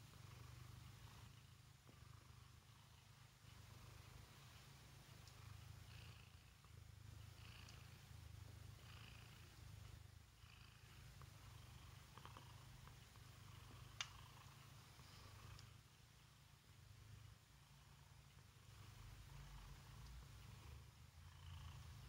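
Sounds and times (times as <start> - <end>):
cat purring: 0.0 - 22.0.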